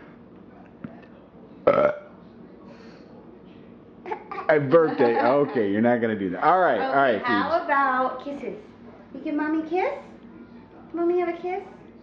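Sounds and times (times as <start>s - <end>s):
burp: 1.6s - 2.1s.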